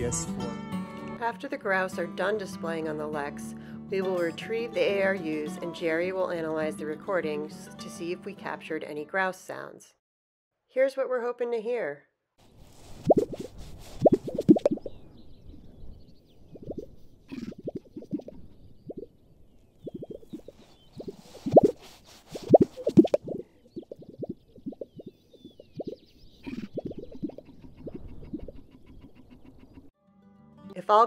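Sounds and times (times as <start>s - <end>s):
grouse hollow pops: 13.0s - 14.9s, 16.6s - 19.1s, 19.8s - 28.7s.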